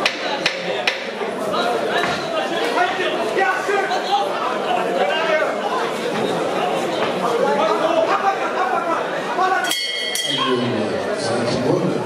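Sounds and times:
crowd chatter: 0.0s - 12.0s
metal ring bell struck: 9.6s - 10.8s.

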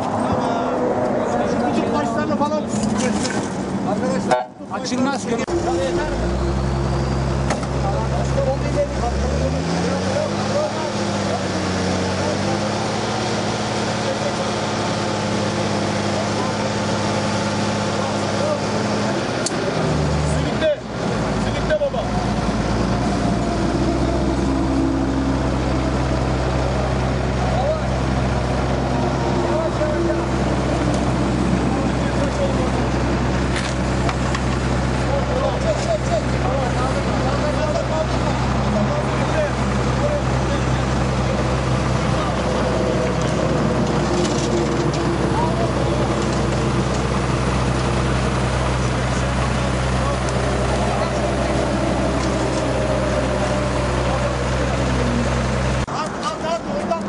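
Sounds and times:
crane engine running: 0.0s - 57.0s
people talking: 0.0s - 57.0s.

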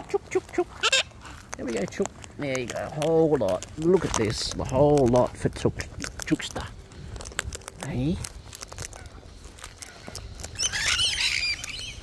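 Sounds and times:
bird squawking: 0.0s - 1.3s, 8.8s - 12.0s
cockatoos cracking seeds: 0.0s - 12.0s.

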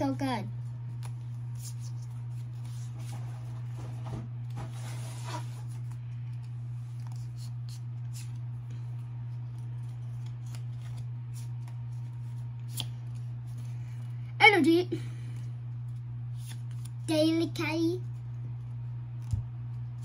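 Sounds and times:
steady low hum: 0.0s - 20.0s
trading cards flipping and sliding: 0.6s - 14.1s, 15.3s - 17.1s.

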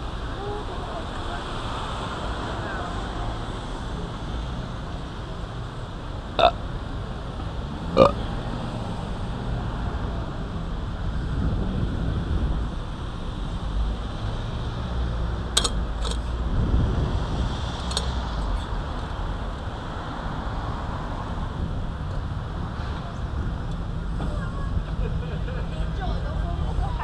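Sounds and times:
traffic rumble: 0.0s - 27.0s
wind on microphone: 10.4s - 14.0s, 15.8s - 19.0s.

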